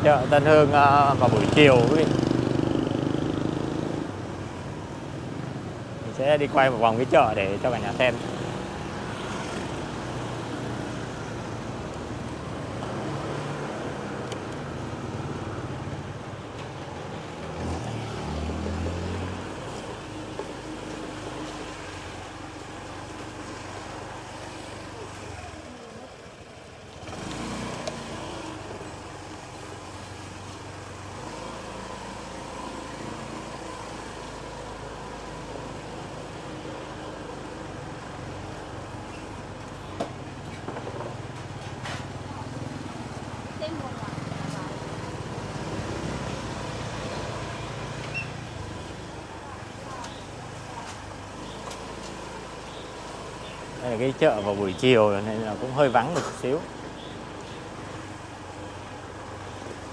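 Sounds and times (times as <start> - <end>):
motorbike engines running and passing: 0.0 - 59.9.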